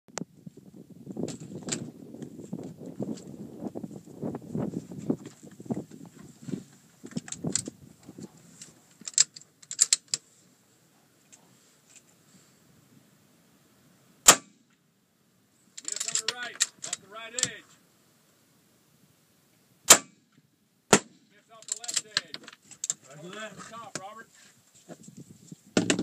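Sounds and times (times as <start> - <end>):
sharp loud clicks: 19.9 - 20.2, 20.9 - 23.0
rustling: 21.2 - 26.0.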